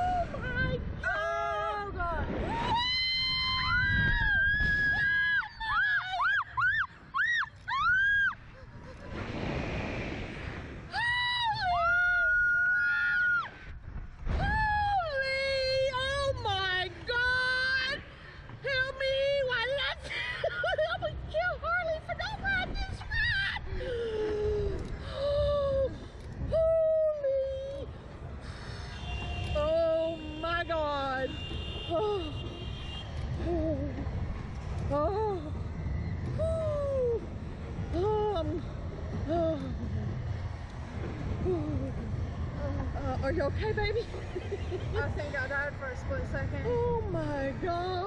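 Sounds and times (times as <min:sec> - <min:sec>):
wind rumble on microphone: 0:00.0 - 0:06.4, 0:07.7 - 0:20.0, 0:20.6 - 0:30.4, 0:31.3 - 0:48.0
women screaming: 0:02.5 - 0:08.4, 0:10.9 - 0:13.6.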